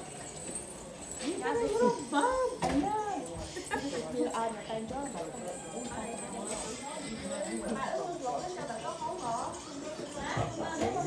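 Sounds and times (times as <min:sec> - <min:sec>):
women talking: 0:01.2 - 0:11.0.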